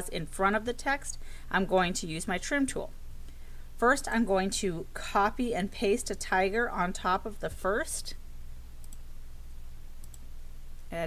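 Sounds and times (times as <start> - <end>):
low electrical hum: 0.0 - 11.0
faint computer mouse clicks: 8.8 - 9.1, 10.0 - 10.3.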